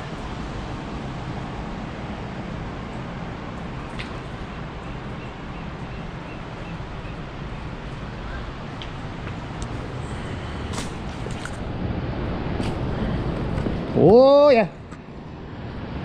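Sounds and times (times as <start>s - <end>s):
ocean surf rumbling: 0.0s - 16.0s
wind: 0.0s - 16.0s
footsteps on loose stones: 9.7s - 11.6s.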